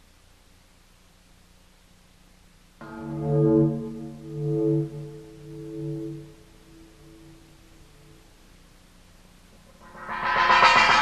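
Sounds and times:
metal hand gong ringing: 2.8s - 7.6s, 9.7s - 11.0s.

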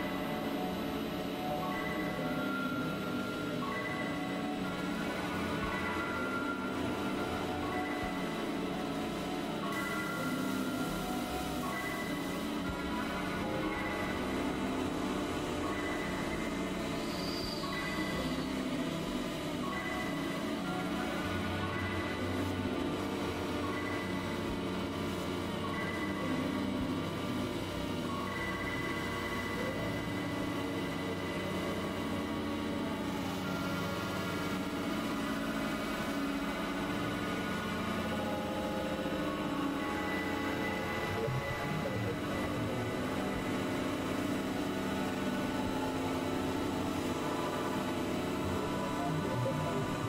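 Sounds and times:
layered synthesizer drones: 0.0s - 50.0s.

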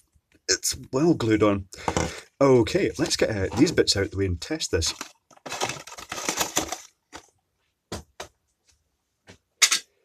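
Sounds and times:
cardboard rustling scrape: 3.0s - 4.0s.

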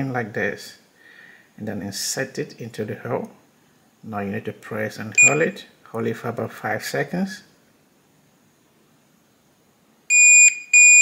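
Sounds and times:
long high-pitched lock beeps: 5.2s - 5.6s, 10.1s - 11.0s.

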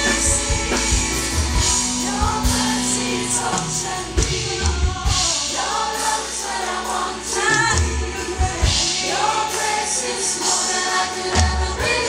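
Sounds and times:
band playing: 0.0s - 12.0s
gospel choir singing: 0.0s - 12.0s.

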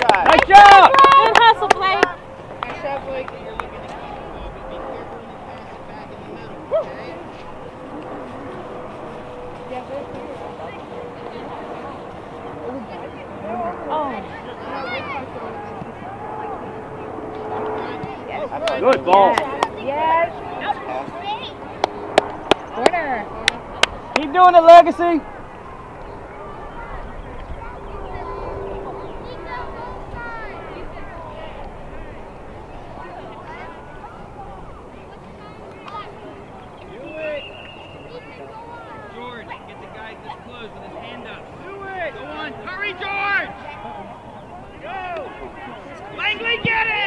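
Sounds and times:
distant voices calling: 0.0s - 47.0s
low steady background noise: 0.0s - 47.0s.

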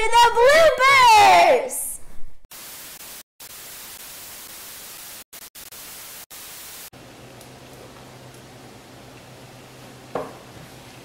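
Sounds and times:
tv static hiss: 2.5s - 6.9s.

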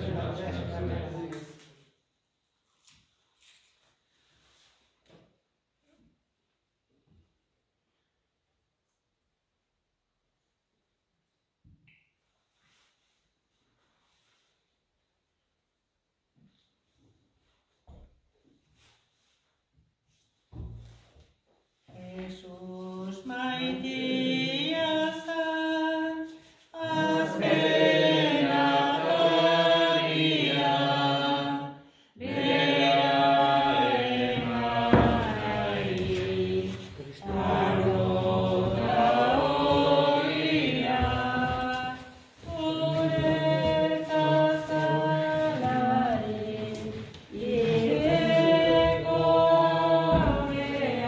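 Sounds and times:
choir singing a hymn: 0.0s - 1.5s, 21.9s - 51.0s.

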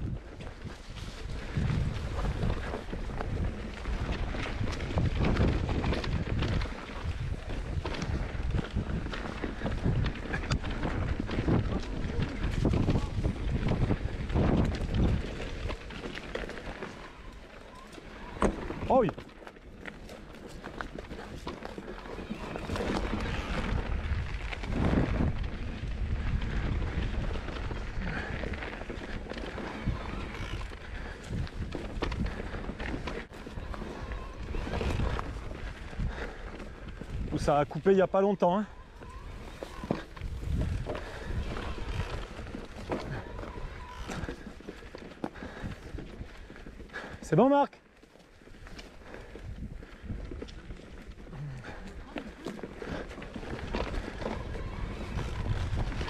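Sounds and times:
wind buffeting microphone: 0.0s - 17.3s, 20.6s - 47.2s, 48.6s - 56.0s
bike tyre noise: 0.0s - 56.0s.

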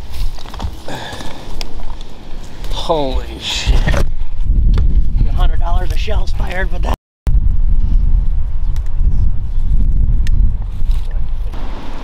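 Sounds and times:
leaves and brush rustling: 0.0s - 3.3s, 10.4s - 12.0s
wind buffeting microphone: 0.0s - 12.0s.

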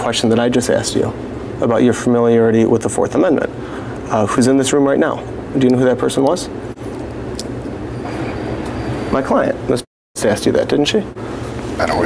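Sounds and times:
low even hum: 0.0s - 12.0s.

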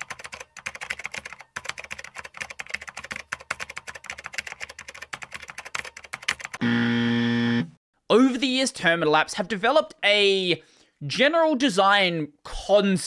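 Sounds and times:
rapid keyboard typing: 0.0s - 6.6s
low harsh buzzer tone: 6.6s - 7.8s.

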